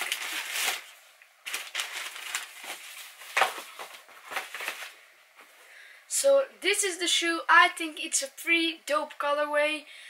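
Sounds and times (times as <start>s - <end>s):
tissue paper crinkling: 0.0s - 5.0s.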